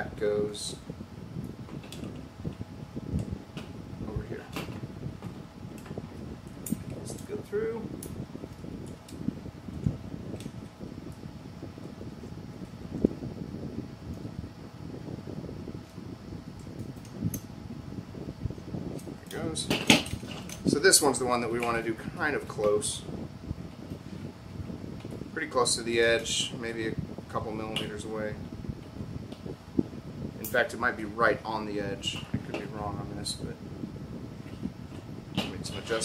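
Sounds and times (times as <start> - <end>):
faint steady hum: 0.0 - 36.0.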